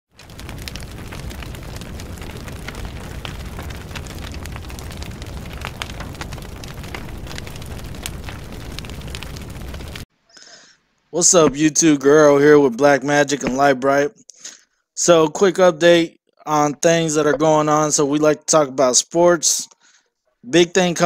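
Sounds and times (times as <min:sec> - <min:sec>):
steady rumbling noise: 0:00.1 - 0:10.1
small crackles and pops: 0:00.1 - 0:11.6.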